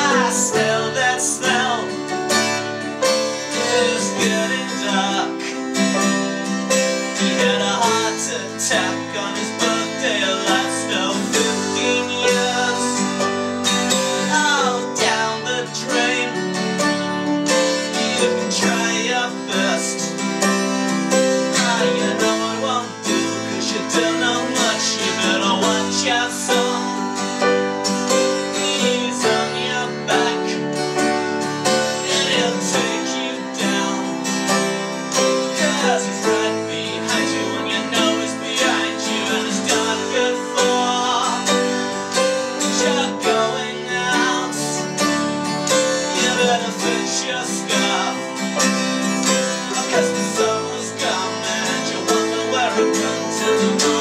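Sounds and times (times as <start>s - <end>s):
acoustic guitar strummed: 0.0s - 54.0s
grand piano: 0.0s - 54.0s
man singing: 0.0s - 54.0s.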